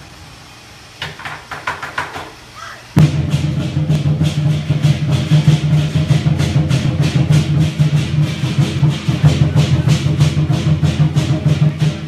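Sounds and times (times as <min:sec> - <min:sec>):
steady low hum: 0:00.0 - 0:01.0, 0:02.4 - 0:12.0
cymbals and drums striking: 0:01.0 - 0:12.0.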